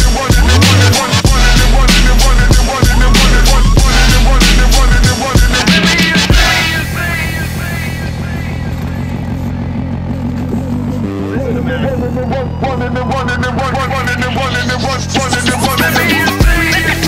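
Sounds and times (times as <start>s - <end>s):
held bass notes: 0.0s - 17.0s
rising sweep: 0.4s - 8.9s.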